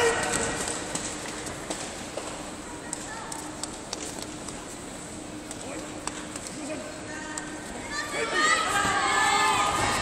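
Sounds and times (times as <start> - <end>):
indistinct voices in a hall: 0.0 - 10.0.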